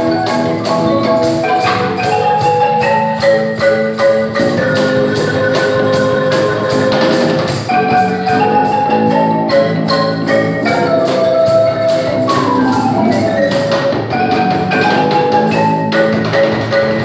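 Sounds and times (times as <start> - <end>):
cajon: 0.0 - 17.0
electric guitar: 0.0 - 17.0
marimba playing: 0.0 - 17.0.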